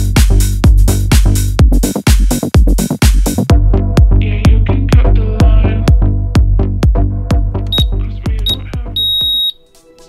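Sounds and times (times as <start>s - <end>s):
electronic workout music: 0.0s - 10.0s
interval timer beeps: 7.7s - 9.6s.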